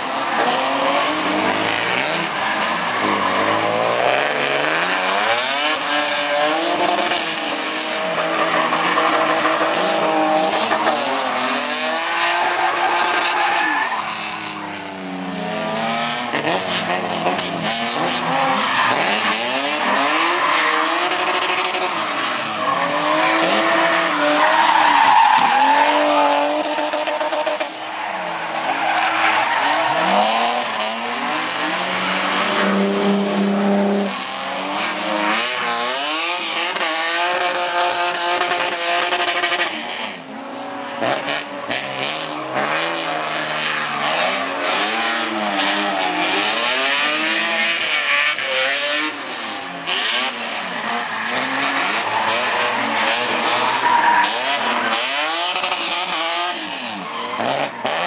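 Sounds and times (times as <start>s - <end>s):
car engines revving: 0.0s - 58.0s.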